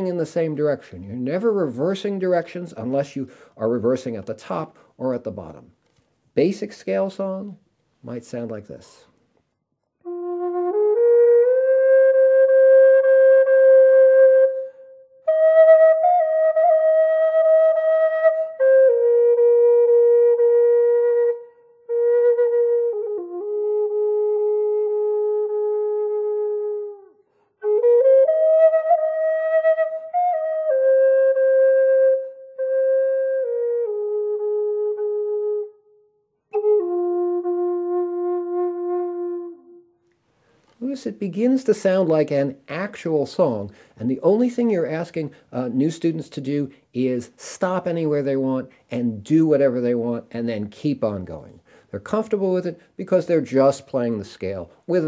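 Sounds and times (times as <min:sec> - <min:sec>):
flute playing slow long notes: 0:10.0 - 0:40.0.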